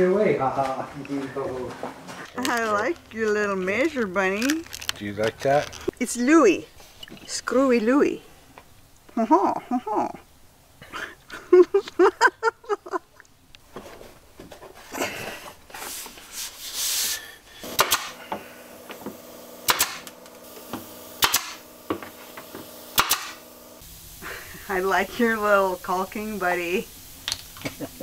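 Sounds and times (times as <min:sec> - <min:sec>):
laughter: 0:09.2 - 0:10.2, 0:10.8 - 0:13.2
air hiss: 0:15.7 - 0:28.0
steady hum: 0:17.6 - 0:28.0
nail gun shots into wood: 0:17.7 - 0:18.2, 0:19.6 - 0:20.2, 0:21.2 - 0:21.6, 0:23.0 - 0:23.4.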